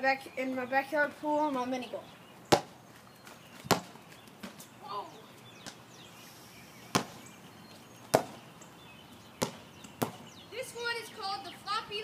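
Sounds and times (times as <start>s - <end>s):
sharp slap: 6.9s - 7.2s.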